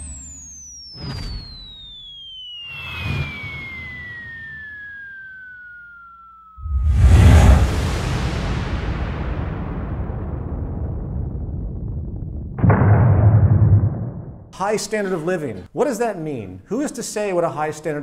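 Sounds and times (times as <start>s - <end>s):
falling bomb whistle: 0.0s - 9.8s
quick whooshes: 6.6s - 8.2s
deep explosion boom: 6.6s - 14.5s.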